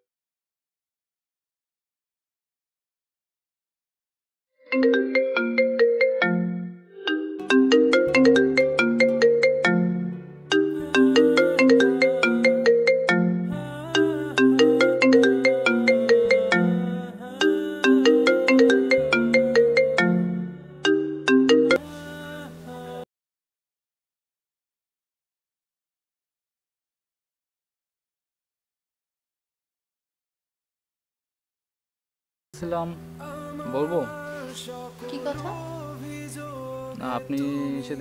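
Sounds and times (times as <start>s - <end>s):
smartphone melodic ringtone: 4.7s - 21.9s.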